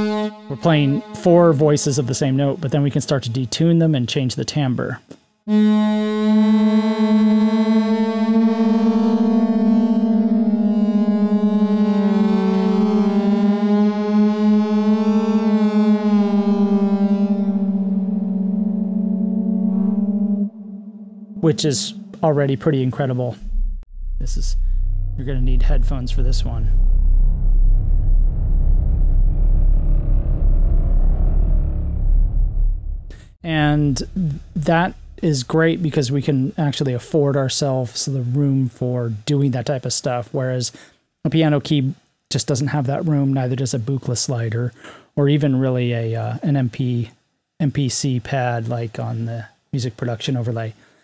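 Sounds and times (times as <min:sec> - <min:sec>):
detuned synth held note: 0:00.0 - 0:02.8, 0:05.5 - 0:37.6.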